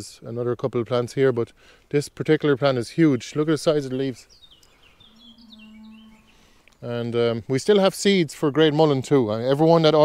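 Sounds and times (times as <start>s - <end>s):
birds chirping: 1.1s - 7.5s
low drawn-out tone: 4.8s - 6.6s.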